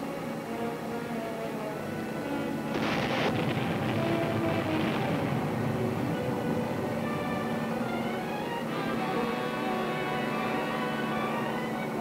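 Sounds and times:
orchestral music: 1.8s - 12.0s
explosion blast: 2.7s - 7.8s.

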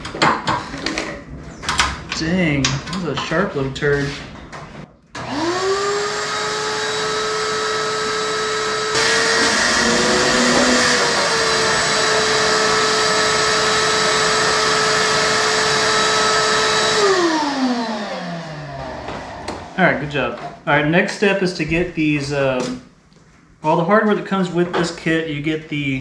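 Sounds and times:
vacuum sucking up metal shavings: 5.2s - 18.6s
shop vacuum motor running: 5.2s - 20.1s.

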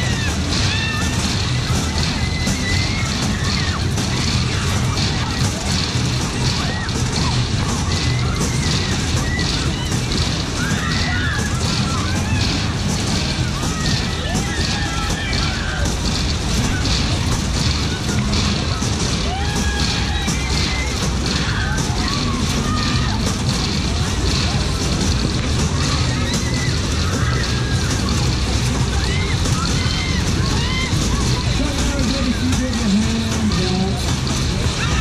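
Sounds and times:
loud fairground music: 0.0s - 35.0s
riders shouting and shrieking: 0.0s - 35.0s.

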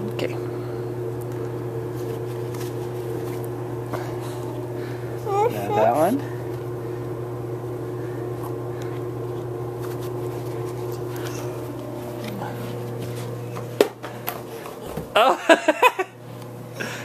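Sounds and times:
appliance motor humming: 0.0s - 17.0s.

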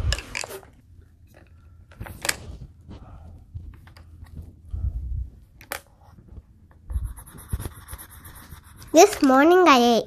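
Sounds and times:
pencil scribbling on paper: 6.9s - 9.4s.

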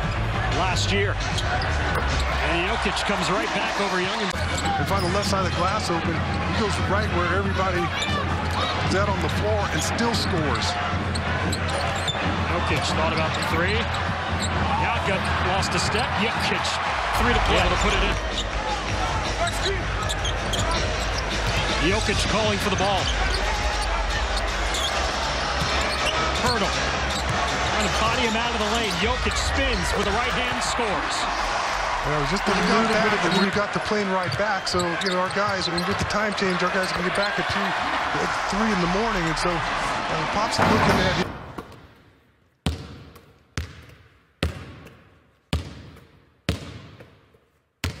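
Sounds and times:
arena crowd noise: 0.0s - 42.2s
sneaker squeak: 4.4s - 5.2s, 11.1s - 12.3s, 19.4s - 21.7s, 25.6s - 26.5s, 27.1s - 28.1s, 34.2s - 37.2s.

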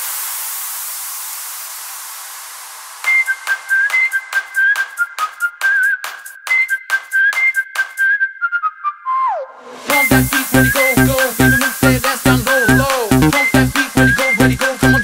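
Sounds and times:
noise sweep: 0.0s - 5.0s, 9.4s - 15.0s
whistled melody: 3.0s - 15.0s.

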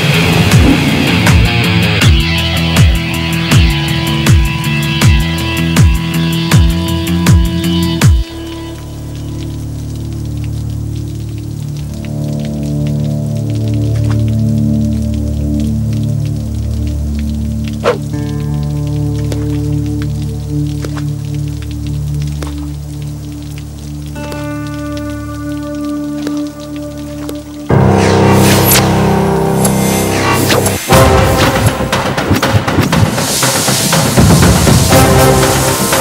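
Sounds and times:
sharp hit: 0.0s - 3.0s, 27.7s - 36.0s
low synth drones and chords: 0.0s - 36.0s
short drip-like ticks: 5.0s - 27.8s.

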